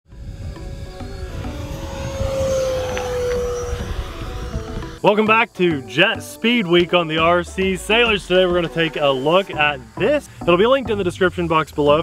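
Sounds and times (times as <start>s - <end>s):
model jet whine passing: 0.1s - 5.1s, 7.9s - 10.3s.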